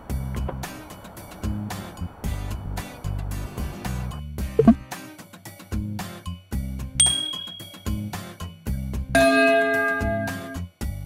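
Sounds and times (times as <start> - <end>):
background music with steady beat: 0.0 - 11.0
notification bell ding: 7.0 - 8.0, 9.2 - 10.6.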